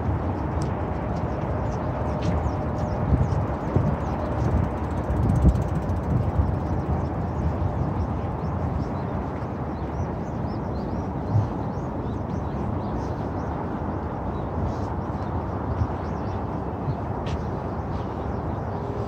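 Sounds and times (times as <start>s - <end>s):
distant traffic rumble: 0.0s - 19.0s
wind on microphone: 0.0s - 19.0s.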